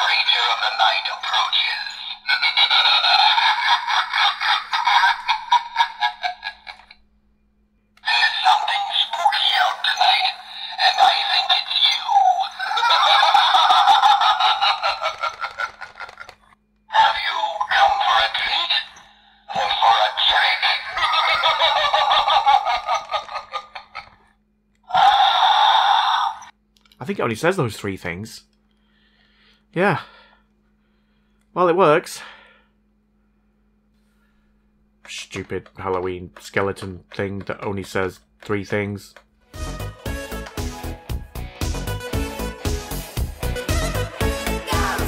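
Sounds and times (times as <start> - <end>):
thin recorded spooky voice: 0.0 - 3.4, 8.0 - 13.1, 16.9 - 21.9, 24.8 - 26.5
low electrical hum: 0.0 - 40.5.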